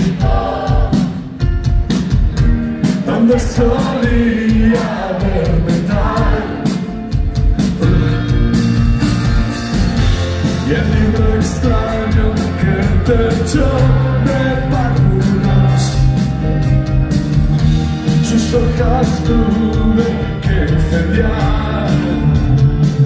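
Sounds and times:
rock band playing live: 0:00.0 - 0:23.0
man singing into a microphone: 0:03.0 - 0:06.6, 0:10.6 - 0:16.1, 0:18.1 - 0:22.6.

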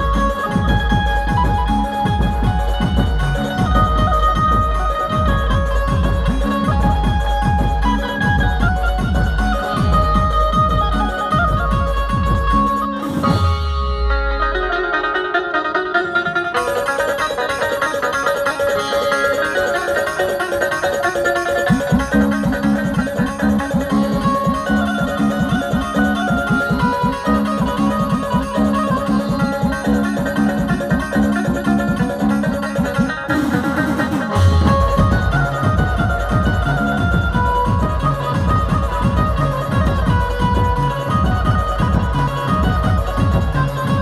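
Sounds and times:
heavy bass beat: 0:00.0 - 0:14.0, 0:34.3 - 0:44.0
drums: 0:00.0 - 0:44.0
electric banjo strummed: 0:00.0 - 0:44.0.

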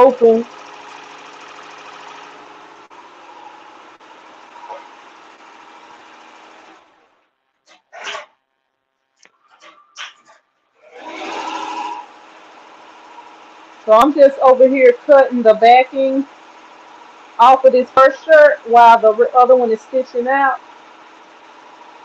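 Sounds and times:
embroidery machine stitching: 0:00.0 - 0:08.3, 0:09.6 - 0:22.0.

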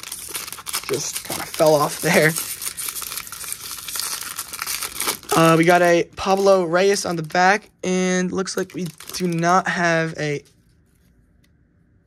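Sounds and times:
foil wrapper crinkling and tearing: 0:00.0 - 0:10.6.

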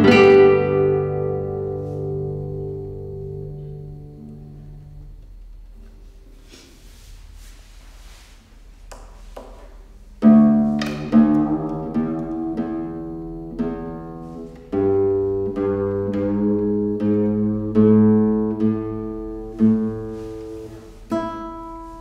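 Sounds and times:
classical guitar chords ringing: 0:00.0 - 0:06.4, 0:10.1 - 0:22.0.

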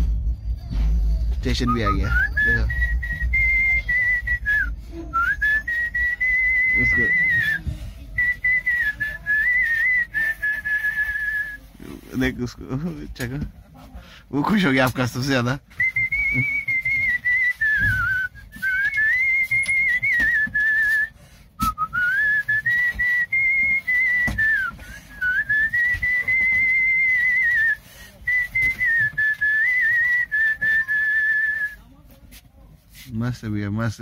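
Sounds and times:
man whistling a tune: 0:00.1 - 0:11.7, 0:15.7 - 0:31.8
short breaths: 0:13.9 - 0:14.3, 0:21.1 - 0:21.7, 0:27.8 - 0:28.3.

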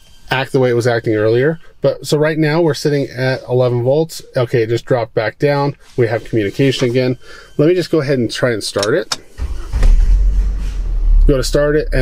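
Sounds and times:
car engine starting and running: 0:08.8 - 0:12.0.

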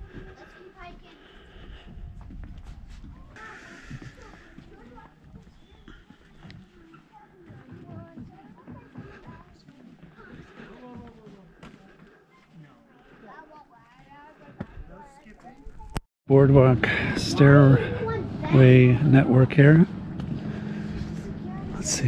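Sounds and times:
footsteps on paved path: 0:00.0 - 0:16.0, 0:19.6 - 0:21.9
people talking faintly: 0:00.0 - 0:16.0.

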